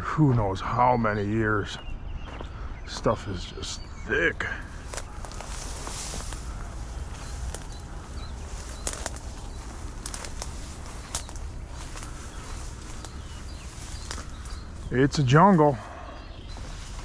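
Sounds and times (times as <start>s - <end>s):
footsteps through brush: 2.2s - 3.1s, 4.5s - 17.0s
leaves and stems rustling: 4.6s - 15.8s, 16.4s - 17.0s
twigs snapping: 4.8s - 14.8s.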